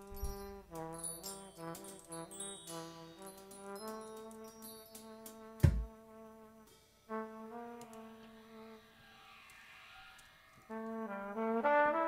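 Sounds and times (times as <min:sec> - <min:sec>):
trumpet playing: 0:00.0 - 0:09.3, 0:10.7 - 0:12.0
soft hiss: 0:00.0 - 0:11.6.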